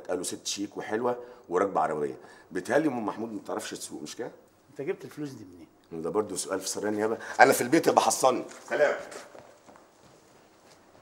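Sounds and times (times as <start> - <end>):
footsteps on a hard floor: 8.5 - 11.0.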